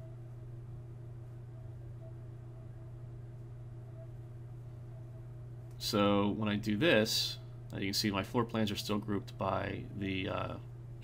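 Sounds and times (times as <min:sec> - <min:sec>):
faint high steady tones: 0:00.0 - 0:11.0
steady low hum: 0:00.0 - 0:11.0.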